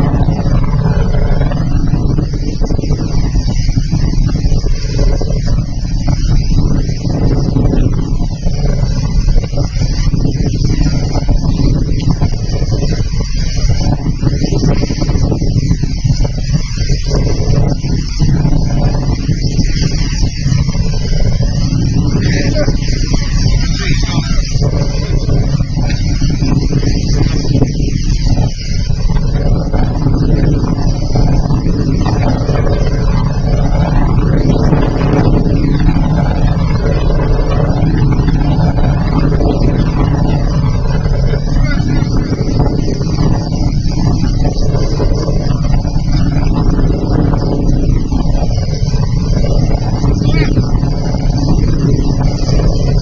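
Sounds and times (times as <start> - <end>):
wind buffeting microphone: 0.0 - 53.0.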